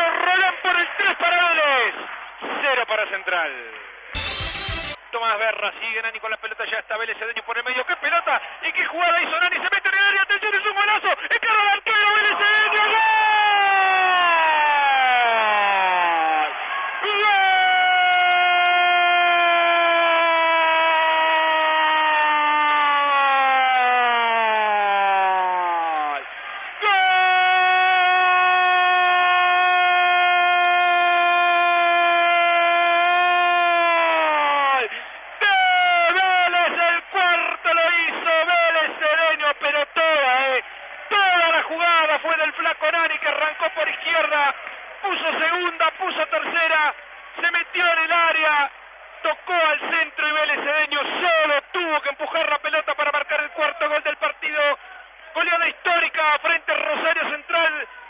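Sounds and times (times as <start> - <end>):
commentator shouting goal cry: 0.0 - 2.0, 6.5 - 48.7, 49.3 - 58.0
fast excited speech: 0.0 - 3.8, 5.0 - 19.4, 31.2 - 48.7, 49.3 - 58.0.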